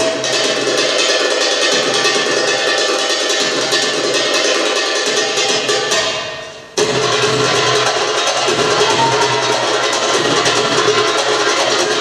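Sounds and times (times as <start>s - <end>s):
dance music with percussion: 0.0s - 12.0s.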